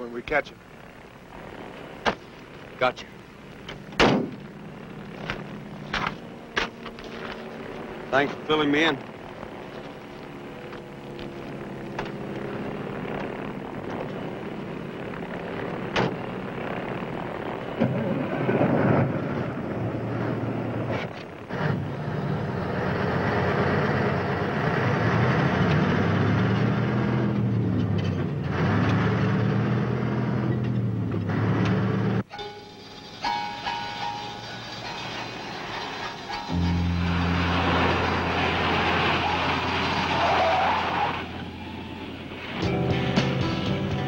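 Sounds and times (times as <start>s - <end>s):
low hum: 0.0s - 44.0s
truck engine under load: 9.0s - 44.0s
film music: 32.3s - 40.1s, 41.7s - 44.0s.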